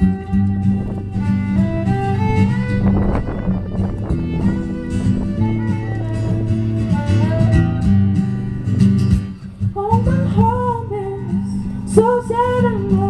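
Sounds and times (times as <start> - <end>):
acoustic guitar: 0.0 - 13.0
violin: 0.0 - 13.0
woman singing: 9.7 - 13.0.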